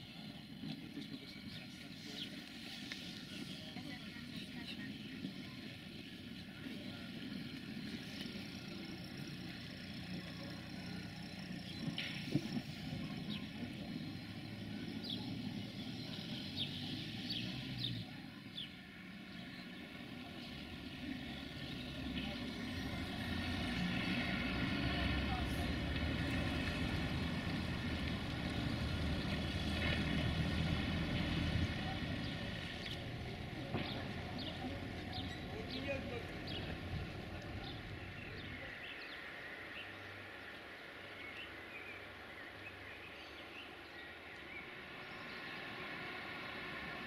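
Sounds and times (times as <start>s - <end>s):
diesel train engine running: 0.0s - 40.5s.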